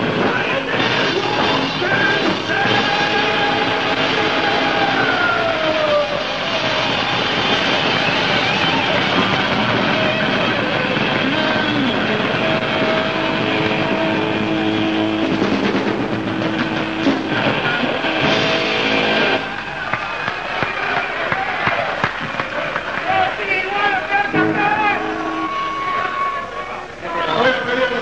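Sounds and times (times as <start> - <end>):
live heavy metal band: 0.0 - 19.6
electric guitar note sliding down: 11.2 - 19.4, 24.3 - 27.0.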